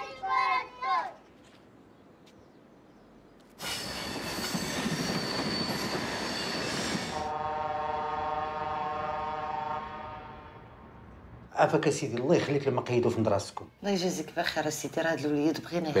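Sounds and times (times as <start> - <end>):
train rushing past: 3.6 - 12.8
train horn chord: 7.2 - 11.0.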